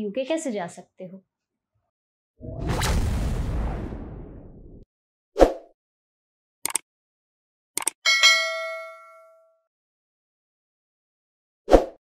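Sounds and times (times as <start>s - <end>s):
notification bell ding: 8.1s - 9.6s.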